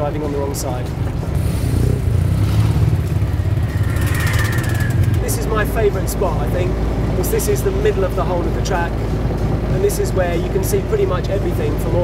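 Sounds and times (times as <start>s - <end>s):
diesel engine rumbling: 0.0s - 12.0s
motorcycles riding past: 1.4s - 5.9s.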